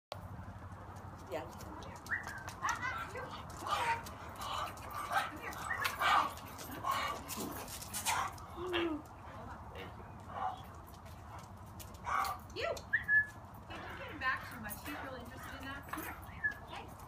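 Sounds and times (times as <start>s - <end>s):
people talking: 1.3s - 4.0s, 5.0s - 6.1s, 13.8s - 17.0s
dog whimpering and yipping: 2.0s - 9.0s.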